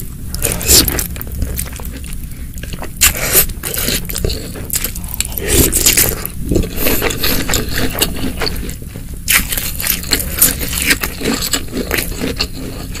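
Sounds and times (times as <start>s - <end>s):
wet crunchy chewing: 0.3s - 13.0s.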